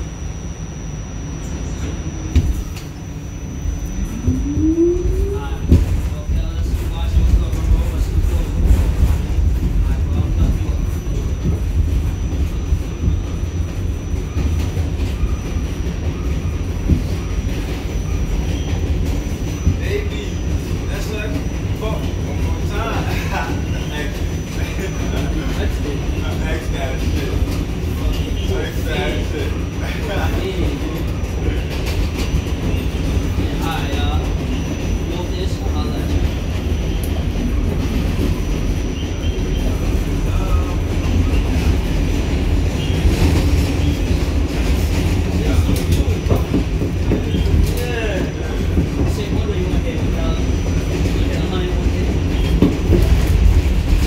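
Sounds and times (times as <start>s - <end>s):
thin high whine: 0.0s - 7.1s
subway car wheels rumbling: 0.0s - 54.0s
faint passenger voices: 0.1s - 54.0s.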